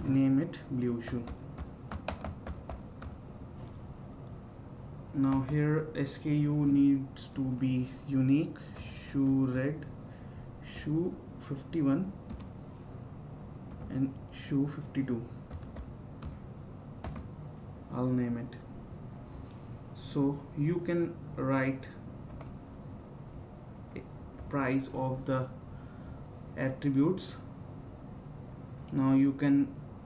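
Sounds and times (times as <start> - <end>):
faint background hiss: 0.0 - 30.0
keyboard keystrokes: 1.1 - 3.2, 5.3 - 5.6, 12.3 - 12.5, 17.0 - 17.3.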